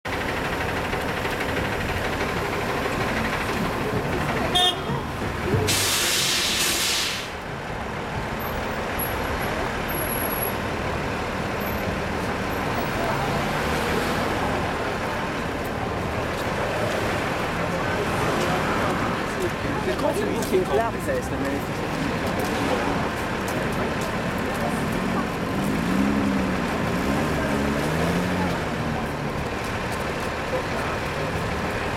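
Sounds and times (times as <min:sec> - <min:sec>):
vehicle engines running: 0:00.1 - 0:31.9
car horn toot: 0:04.5 - 0:05.1
air brake hiss: 0:05.7 - 0:07.4.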